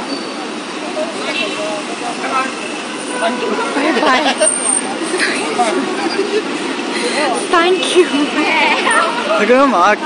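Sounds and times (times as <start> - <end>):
traffic and vehicle engines hum: 0.0 - 10.0
voices talking: 0.0 - 10.0.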